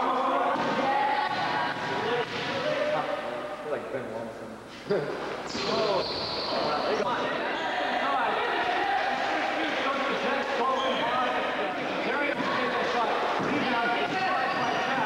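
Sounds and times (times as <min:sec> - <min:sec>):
voices talking and calling out: 0:00.0 - 0:15.0.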